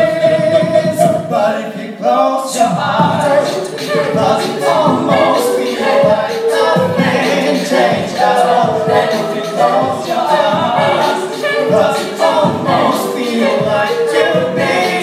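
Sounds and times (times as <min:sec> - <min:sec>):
vocal group singing in harmony: 0:00.0 - 0:15.0.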